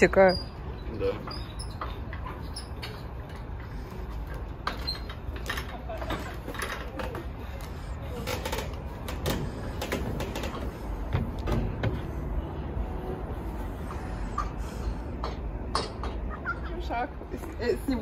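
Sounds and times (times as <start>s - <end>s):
footsteps on metal grating: 1.3s - 12.4s
steady low rumble: 7.2s - 16.0s.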